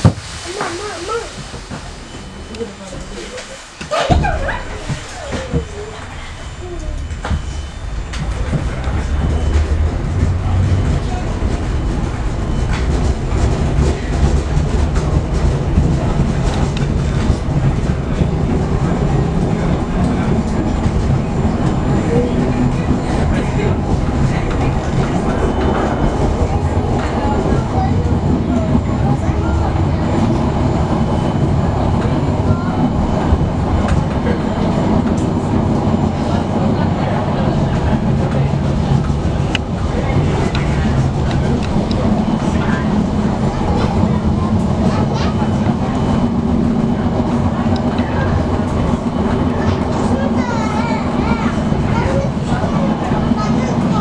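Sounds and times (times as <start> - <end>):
train rumbling on rails: 0.0 - 54.0.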